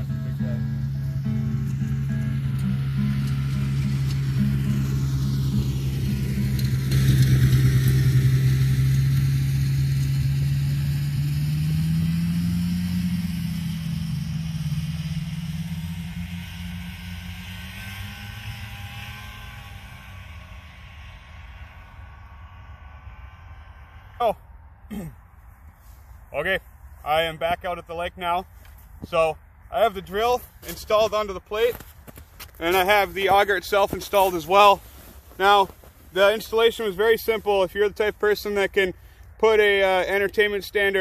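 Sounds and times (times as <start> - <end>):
vehicle driving past: 0.0 - 24.8.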